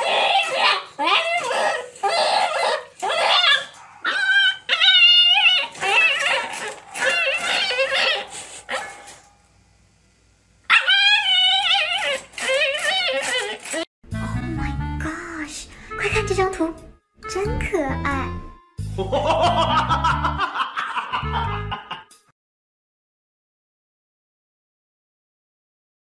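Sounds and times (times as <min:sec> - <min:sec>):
puppy whining and yipping: 0:00.0 - 0:09.2, 0:10.7 - 0:13.9.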